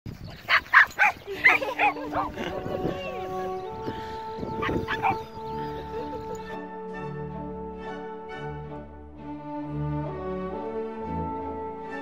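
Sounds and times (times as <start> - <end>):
dog barking: 0.5 - 2.4, 4.6 - 5.2.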